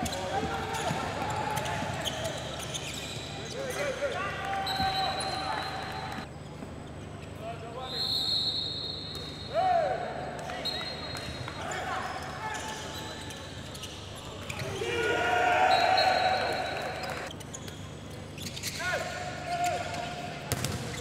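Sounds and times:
shoes squeaking: 0.0s - 7.4s, 10.5s - 14.9s, 15.8s - 21.0s.

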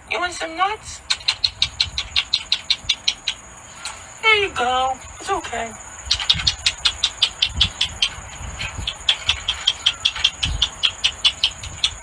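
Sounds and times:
chipmunk chipping: 0.3s - 12.0s.

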